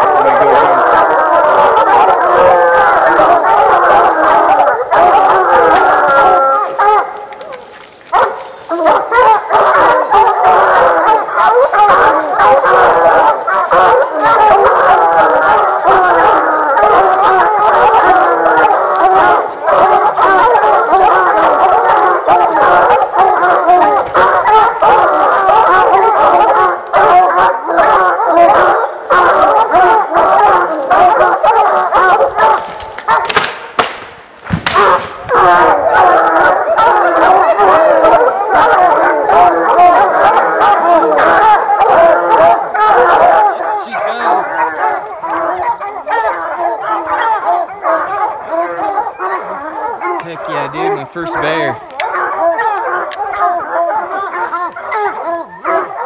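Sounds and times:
hounds baying and howling: 0.0s - 56.0s.

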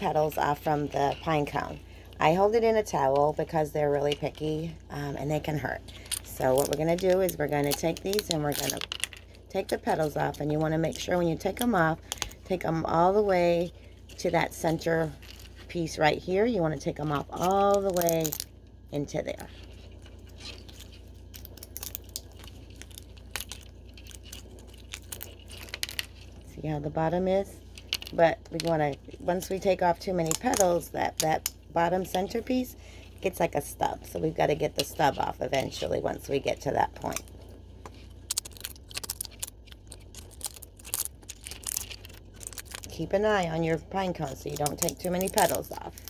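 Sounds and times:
pine cone scales cracking: 17.3s - 18.5s, 19.7s - 26.4s, 37.1s - 42.9s.

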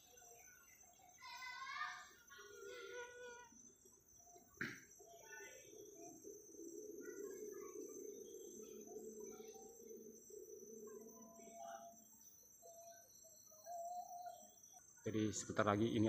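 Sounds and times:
insects trilling: 0.0s - 16.0s.

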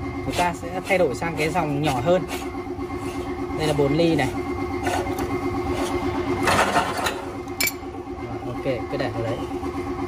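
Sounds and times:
meat grinder motor humming: 0.0s - 10.0s
metal part clattering into pot: 6.4s - 7.8s.

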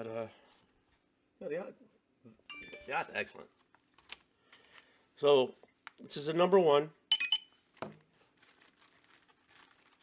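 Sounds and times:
faint plastic bag crinkling: 7.7s - 10.0s.

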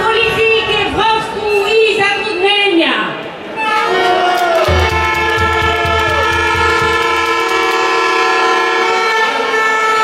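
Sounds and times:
low drum beats: 4.7s - 7.8s
horns holding a chord: 4.7s - 8.6s.

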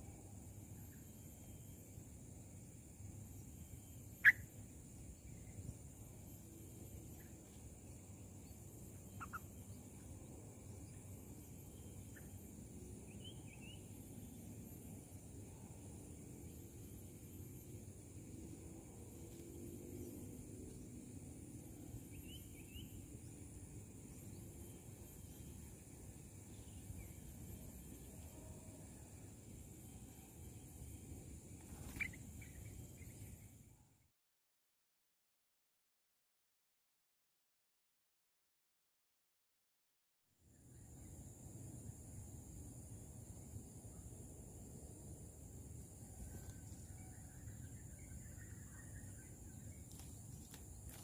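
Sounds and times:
bird chirps: 3.3s - 5.8s, 8.2s - 14.9s, 21.7s - 33.6s.

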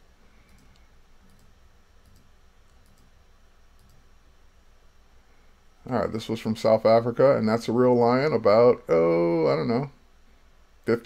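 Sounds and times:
low room hum: 0.0s - 11.0s
computer mouse clicks: 0.4s - 4.0s.

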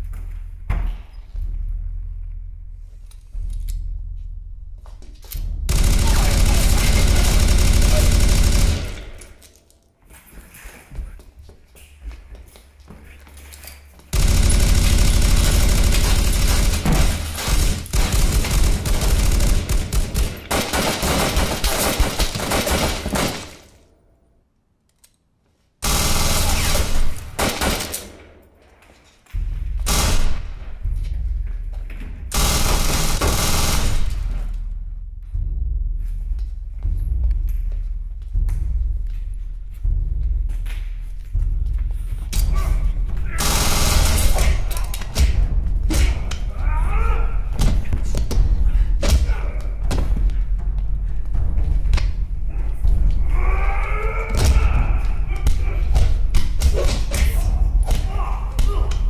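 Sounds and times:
automatic gunfire bursts: 5.7s - 9.2s, 14.2s - 23.6s.

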